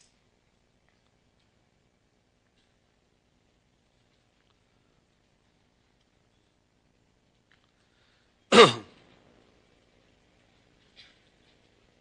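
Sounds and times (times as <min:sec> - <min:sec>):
man clearing his throat: 0:08.5 - 0:08.9.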